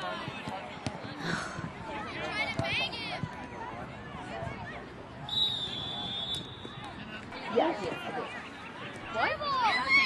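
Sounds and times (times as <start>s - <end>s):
referee's whistle: 5.3s - 6.8s.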